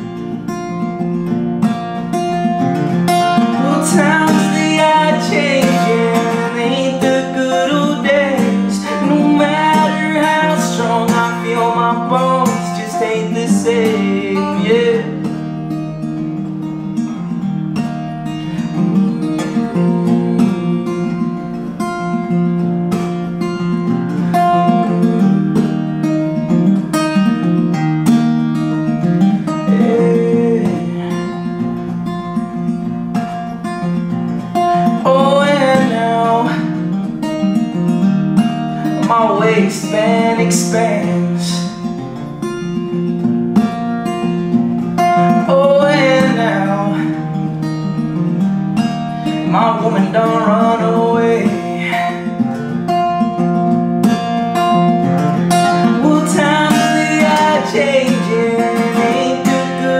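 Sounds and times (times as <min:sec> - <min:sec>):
acoustic guitar strumming: 0:00.0 - 0:59.9
man singing: 0:03.1 - 0:15.4, 0:18.5 - 0:21.5, 0:24.1 - 0:25.4, 0:28.9 - 0:31.9, 0:34.6 - 0:37.0, 0:38.8 - 0:42.0, 0:45.0 - 0:48.1, 0:49.2 - 0:53.0, 0:55.5 - 0:59.9.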